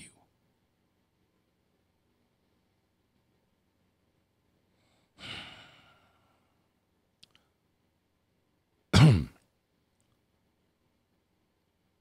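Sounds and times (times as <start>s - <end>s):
man sighing heavily: 5.2s - 6.5s
short loud throat sound: 9.0s - 9.4s.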